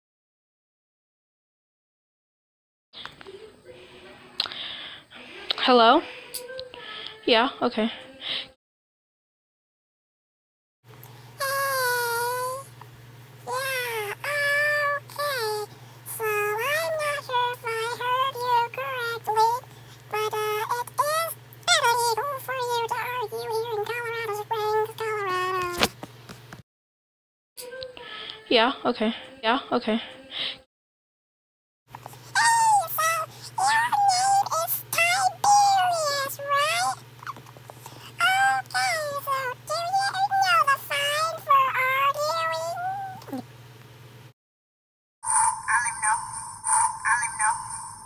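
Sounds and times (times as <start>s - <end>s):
steady low hum: 10.9s - 26.6s, 31.9s - 44.3s, 45.2s - 48.0s
high wordless singing voice: 11.4s - 12.7s, 13.4s - 25.8s, 32.2s - 37.1s, 38.0s - 43.5s
high-pitched squeaky calls: 45.2s - 48.0s.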